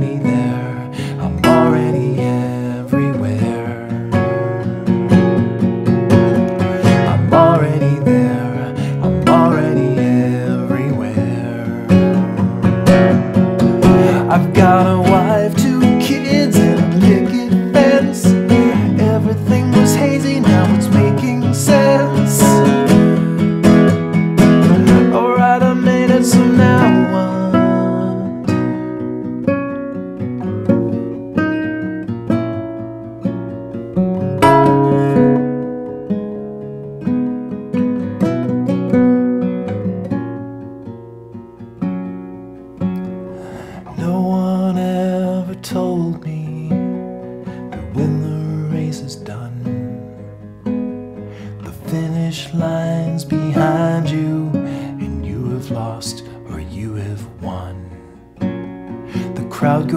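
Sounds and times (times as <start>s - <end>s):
nylon-string guitar strumming: 0.0s - 59.9s.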